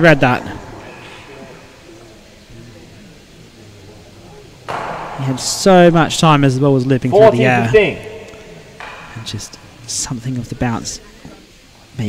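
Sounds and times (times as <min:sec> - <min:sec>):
faint murmuring voices: 0:00.0 - 0:05.7, 0:07.6 - 0:12.0
man speaking loudly: 0:05.2 - 0:08.5.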